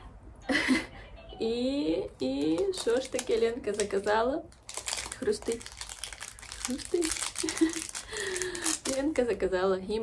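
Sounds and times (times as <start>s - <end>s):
packaging crinkling: 2.2s - 9.4s.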